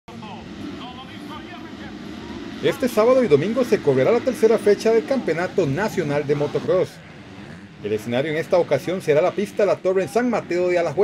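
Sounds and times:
dirt bikes revving: 0:00.1 - 0:11.0.

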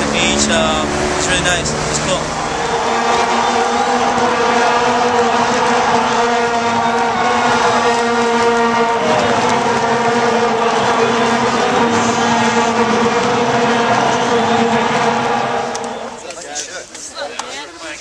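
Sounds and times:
vuvuzelas droning: 0:00.0 - 0:16.4
crowd noise: 0:00.0 - 0:18.0.

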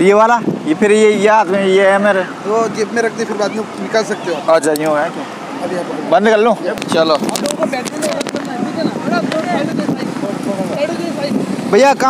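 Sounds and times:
voices talking over one another: 0:00.0 - 0:12.0.

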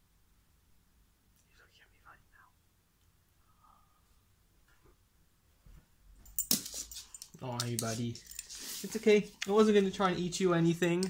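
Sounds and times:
faint whispers: 0:01.4 - 0:02.7.

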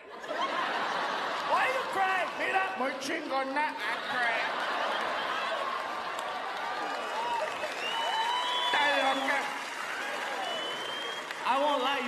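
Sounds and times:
audience applauding: 0:00.8 - 0:12.0
voices rising over clapping: 0:03.9 - 0:12.0.

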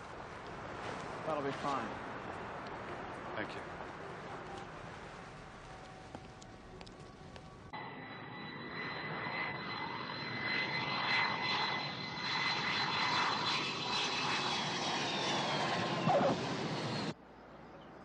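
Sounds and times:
airplane engines whining: 0:00.0 - 0:18.0.

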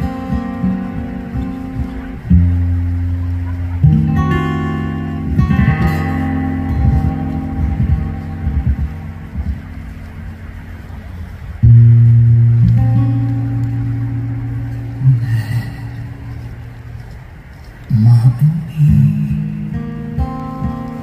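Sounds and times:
loud low guitar chord: 0:00.0 - 0:17.2, 0:17.9 - 0:21.0
acoustic guitar picking: 0:00.0 - 0:21.0.

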